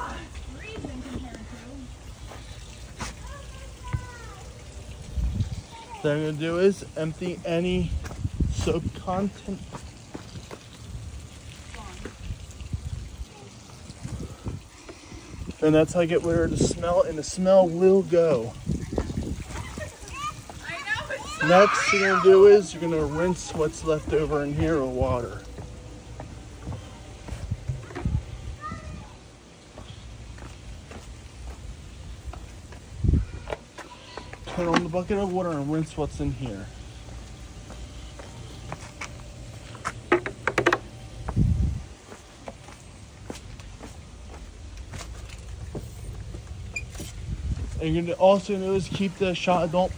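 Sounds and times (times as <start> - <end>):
knocks and handling noises: 39.8 - 41.0.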